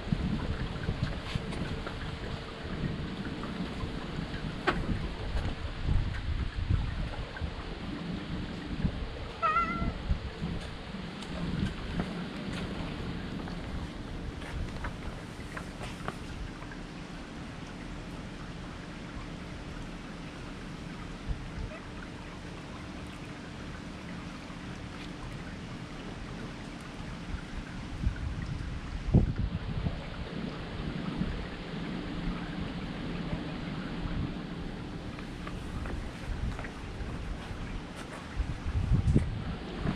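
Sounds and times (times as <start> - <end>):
microphone handling rumbles: 35.3 - 39.9.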